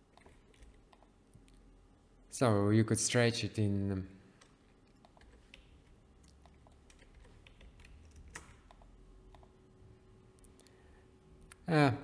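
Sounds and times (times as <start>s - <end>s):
keyboard and mouse clicks: 0.1s - 1.6s, 4.4s - 9.6s.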